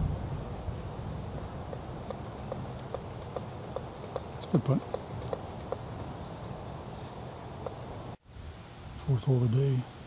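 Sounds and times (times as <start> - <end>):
low rumble of wind: 0.0 - 10.0.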